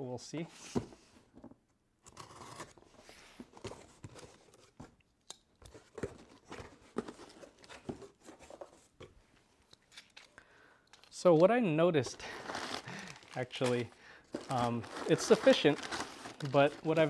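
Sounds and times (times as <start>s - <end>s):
packing tape tearing: 12.2s - 17.0s.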